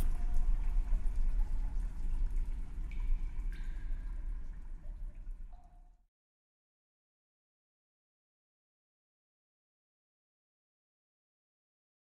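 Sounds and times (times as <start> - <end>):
faint dripping: 0.0 - 6.1
low steady rumble: 0.0 - 6.1.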